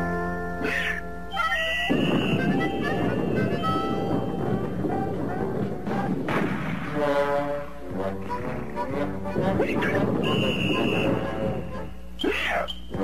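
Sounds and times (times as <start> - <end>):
cartoon music: 0.0 - 6.1.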